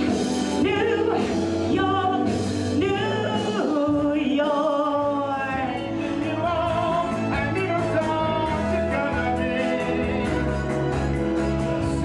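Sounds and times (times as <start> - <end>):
woman singing with vibrato: 0.0 - 10.3
amplified musical accompaniment: 0.0 - 12.0
steady bass line: 0.0 - 12.0.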